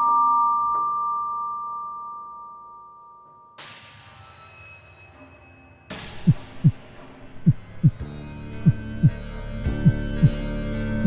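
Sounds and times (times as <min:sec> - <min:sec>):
dark music drone: 0:05.1 - 0:11.0
heartbeat thumps: 0:06.1 - 0:10.4.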